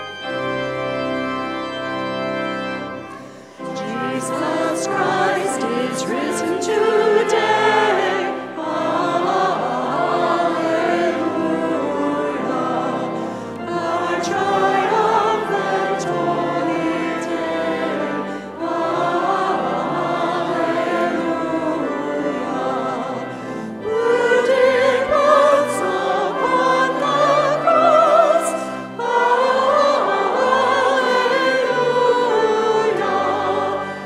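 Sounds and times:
choir singing a hymn: 0.0 - 34.0
organ chord: 0.0 - 34.0.

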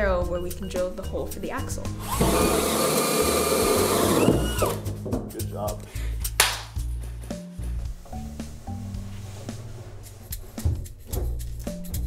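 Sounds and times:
background music with low notes: 0.0 - 12.0
gloved hands slapping: 6.2 - 7.0.

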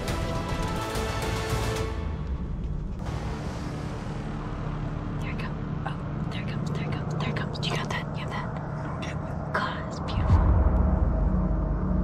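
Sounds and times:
low steady rumble: 2.2 - 12.0
hushed whispering: 5.2 - 10.4.

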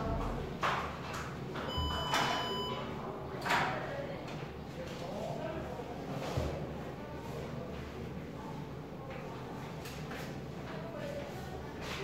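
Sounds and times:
projector buzzy beep: 1.7 - 2.8.

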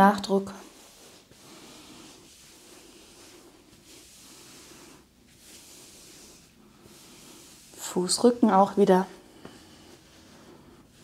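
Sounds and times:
hands rustling on cloth trousers: 0.4 - 8.3.

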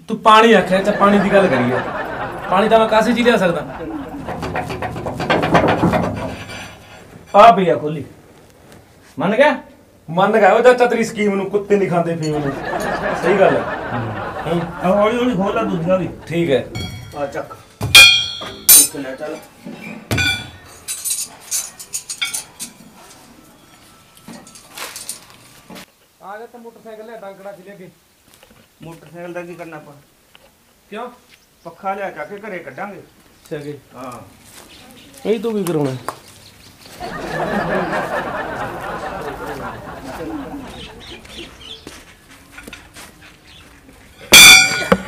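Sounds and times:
men talking: 0.0 - 5.9, 7.3 - 8.2, 9.2 - 17.7, 18.4 - 19.5, 30.9 - 34.4, 35.3 - 36.1, 37.0 - 41.6
tools striking iron: 16.8 - 19.5, 20.1 - 22.8, 44.3 - 45.0
light metal clinks: 16.8 - 19.6, 20.2 - 25.4, 44.1 - 45.0.

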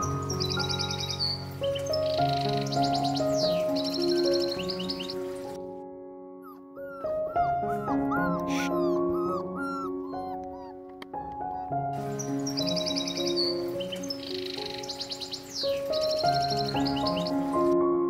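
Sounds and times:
soft background music: 0.0 - 18.0
puppy whimpering: 6.4 - 11.9.

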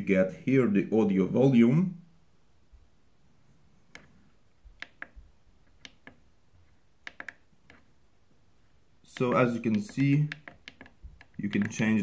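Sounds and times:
keyboard buttons clicking: 4.7 - 6.2, 7.0 - 7.8, 9.1 - 12.0.

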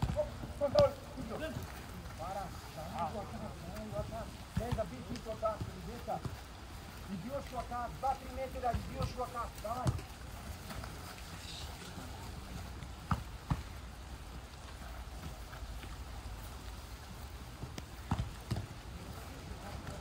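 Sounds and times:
football being kicked: 0.0 - 1.7, 3.8 - 6.5, 8.5 - 10.2, 12.9 - 13.8, 17.5 - 18.9.

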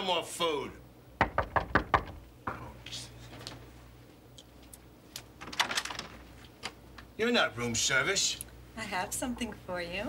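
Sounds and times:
knocking on a door: 1.2 - 2.2.

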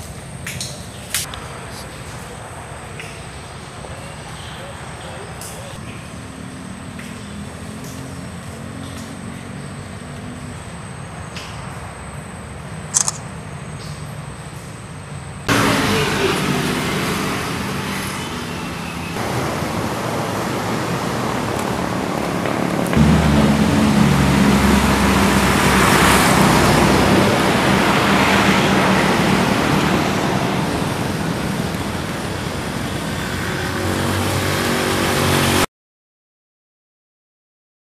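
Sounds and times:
road traffic rumble: 0.0 - 35.7.

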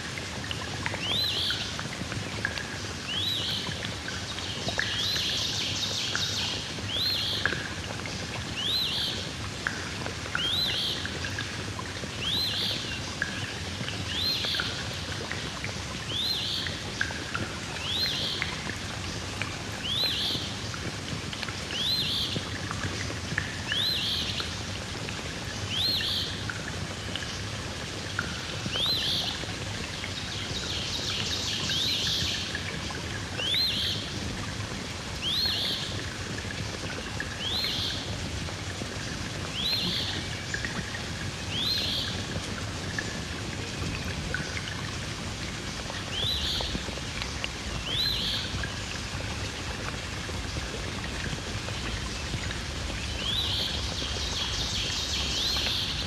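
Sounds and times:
outdoor background noise: 0.0 - 56.0.

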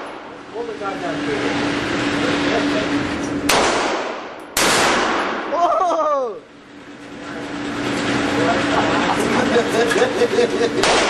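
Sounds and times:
falling-pitch whine: 0.0 - 3.5
gunshots with echoing tail: 3.5 - 5.5, 10.8 - 11.0.

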